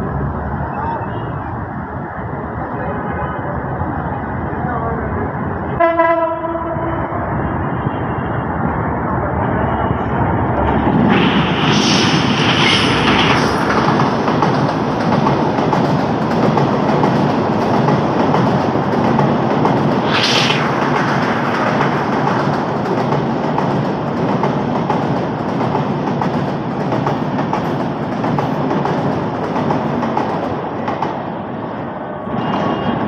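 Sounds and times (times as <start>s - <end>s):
train wheels on track: 0.0s - 33.0s
train horn blast: 5.8s - 6.9s.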